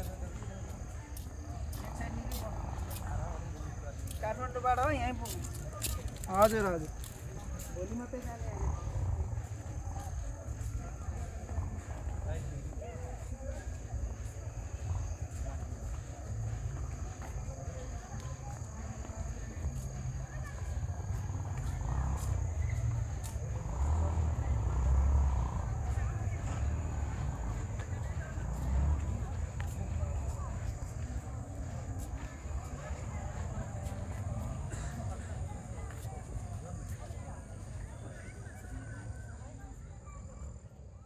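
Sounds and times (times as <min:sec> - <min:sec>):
faint distant voices: 0:00.0 - 0:41.0.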